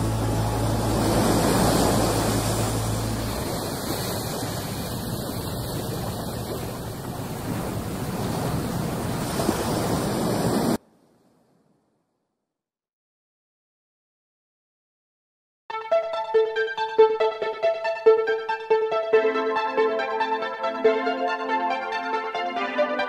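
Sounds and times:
held low musical note: 0:00.0 - 0:03.9
rushing wash like surf: 0:00.0 - 0:10.8.

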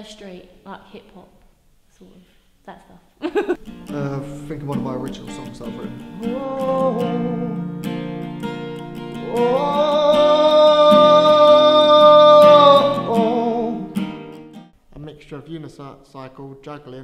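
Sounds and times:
person singing: 0:03.4 - 0:07.9, 0:08.8 - 0:14.1
strummed acoustic guitar: 0:03.6 - 0:14.8.

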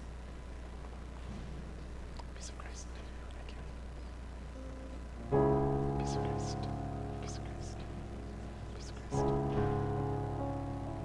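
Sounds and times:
steady low hum: 0:00.0 - 0:11.0
faint quiet voices: 0:02.2 - 0:04.2, 0:06.0 - 0:09.4.

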